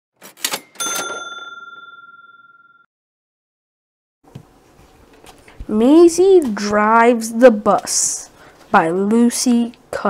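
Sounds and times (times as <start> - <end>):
bright bell ding: 0.6 - 2.9.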